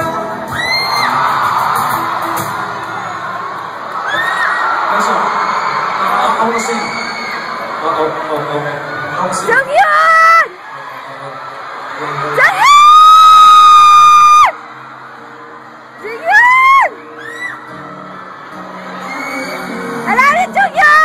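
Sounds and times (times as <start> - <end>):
live band music: 0.0 - 3.2
crowd noise: 0.0 - 21.0.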